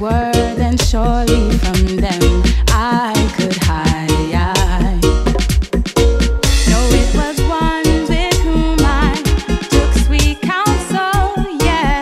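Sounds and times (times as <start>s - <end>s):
person singing: 0.0s - 5.3s, 6.6s - 12.0s
deep bass line: 0.0s - 10.4s, 11.2s - 12.0s
reggae song: 0.0s - 12.0s
drum hits: 0.8s - 9.9s.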